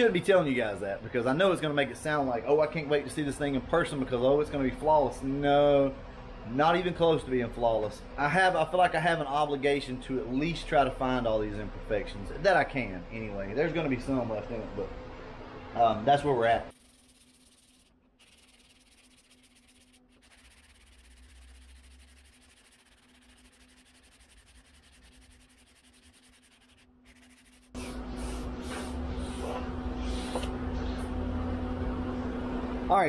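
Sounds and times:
sanding block rasping: 16.7 - 29.5
steady hum: 16.7 - 33.0.

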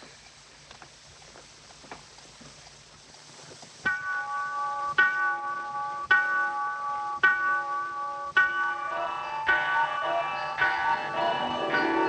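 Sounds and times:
clock bell striking: 3.9 - 12.0.

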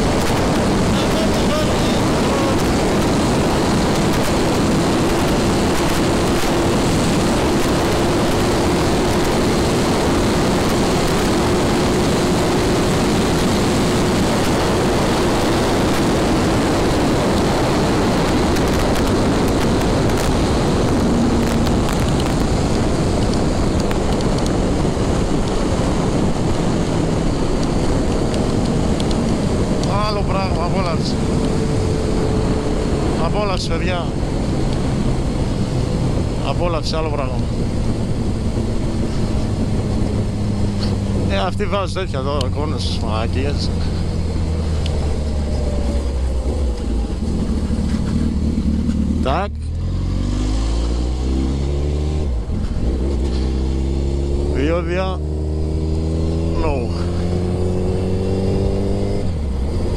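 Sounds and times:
motorcycle engine running: 0.0 - 33.2, 42.4 - 49.8
wind rush on microphone: 0.0 - 59.9.

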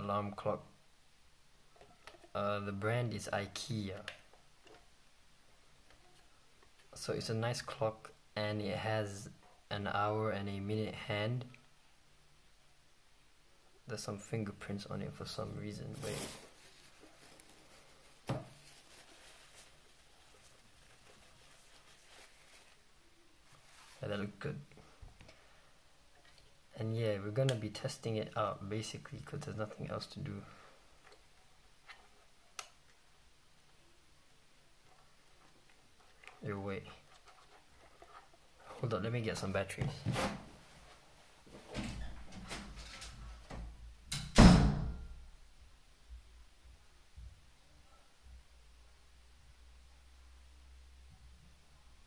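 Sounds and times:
tissue rustling on clock: 15.5 - 25.0.

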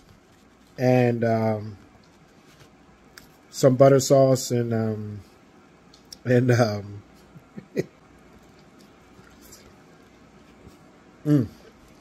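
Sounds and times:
person chewing food: 8.2 - 10.6.

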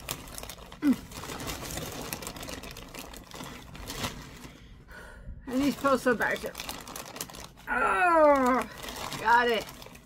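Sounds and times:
rustling and clattering of objects: 0.0 - 4.7, 5.5 - 7.7, 8.3 - 10.0.

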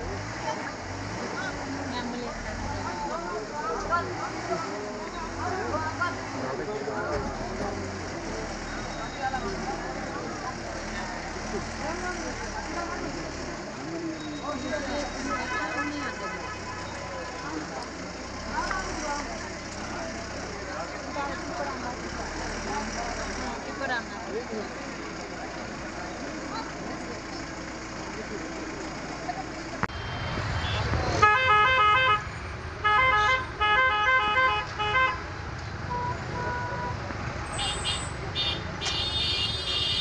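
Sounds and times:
crowd voices talking: 0.0 - 33.6
vehicle engine idling: 0.0 - 40.0.

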